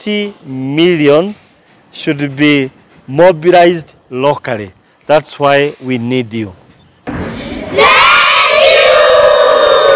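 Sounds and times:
children shouting and cheering: 7.1s - 9.9s.

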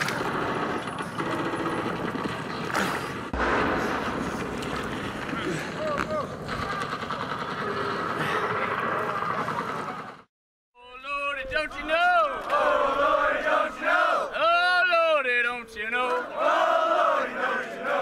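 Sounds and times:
rough outdoor noise: 0.0s - 18.0s.

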